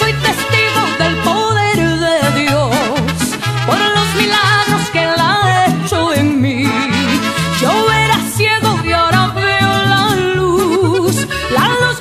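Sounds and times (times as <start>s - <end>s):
mariachi music: 0.0s - 12.0s.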